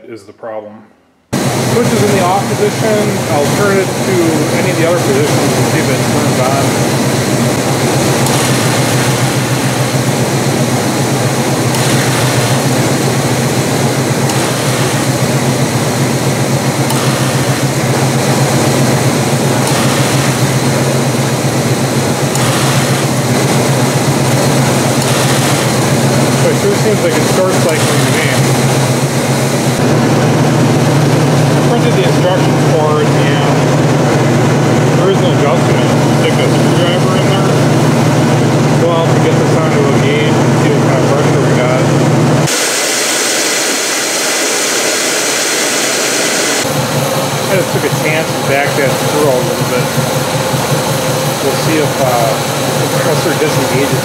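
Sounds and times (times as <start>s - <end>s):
car engine idling: 1.3s - 42.6s, 45.5s - 54.0s.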